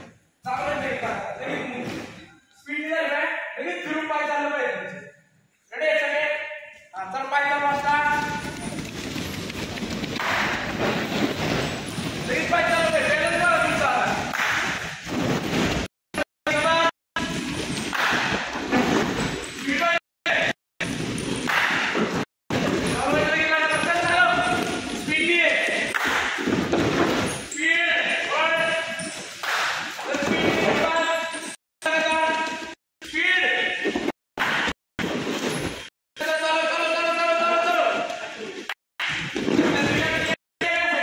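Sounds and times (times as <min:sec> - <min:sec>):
man shouting: 0:40.6 - 0:41.0.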